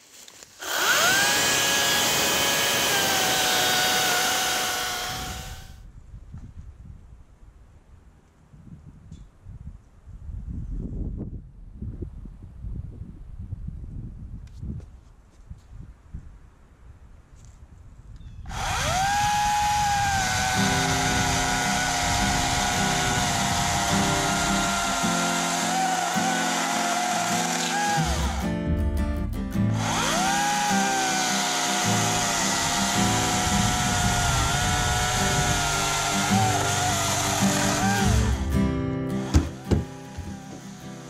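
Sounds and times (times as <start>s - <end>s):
electric chainsaw whining: 0.6s - 5.8s, 18.5s - 28.6s, 29.7s - 41.0s
background music: 20.7s - 41.0s.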